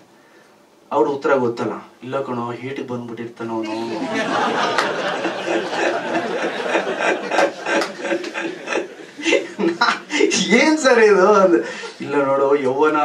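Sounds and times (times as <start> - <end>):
man talking: 0.9 - 4.4, 9.2 - 13.0
people laughing and chattering: 3.6 - 10.4.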